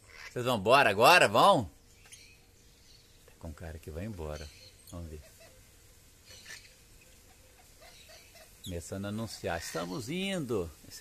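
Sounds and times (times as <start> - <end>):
background hiss: 0.0 - 11.0
parrot calls: 4.4 - 8.7.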